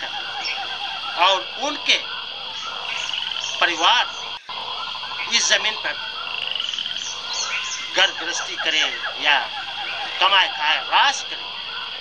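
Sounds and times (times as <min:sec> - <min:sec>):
animal rapid pulsed trill: 0:00.0 - 0:12.0
high-pitched background chorus: 0:00.0 - 0:12.0.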